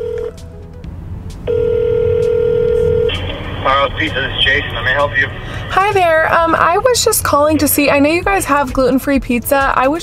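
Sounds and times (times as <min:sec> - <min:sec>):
phone ringback tone: 0:00.0 - 0:00.4, 0:01.5 - 0:03.2.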